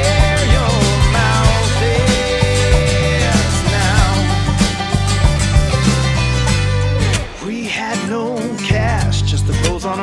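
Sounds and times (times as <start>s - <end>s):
wavering melody line: 0.0s - 7.6s
band music with guitar: 0.0s - 10.0s.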